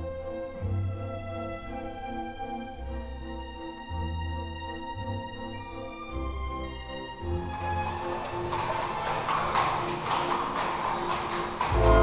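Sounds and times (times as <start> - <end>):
soft background music: 0.0 - 12.0
horse hooves clip-clopping: 7.4 - 12.0.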